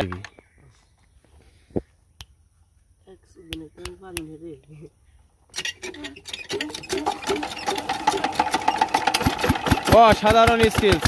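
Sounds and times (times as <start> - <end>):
diesel engine clattering hand cranked: 5.5 - 11.0.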